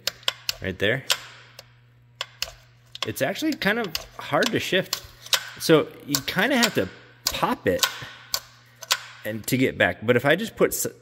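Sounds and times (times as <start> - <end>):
gear selector clicking: 0.0 - 9.1.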